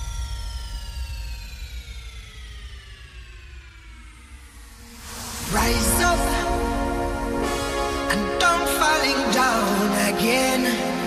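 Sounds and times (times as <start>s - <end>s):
downward synth sweep: 0.0s - 11.0s
low bass rumble: 0.0s - 11.0s.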